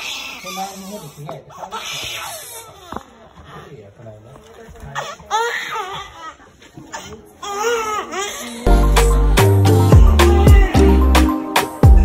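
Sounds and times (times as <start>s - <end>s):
infant crying: 0.0s - 3.7s, 9.6s - 11.2s.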